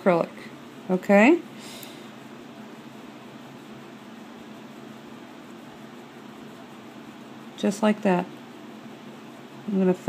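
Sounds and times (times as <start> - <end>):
constant hiss: 0.0 - 10.0.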